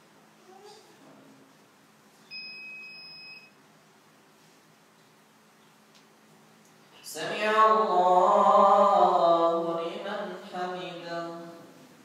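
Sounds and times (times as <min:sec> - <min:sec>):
steady electronic beep: 0:02.3 - 0:03.6.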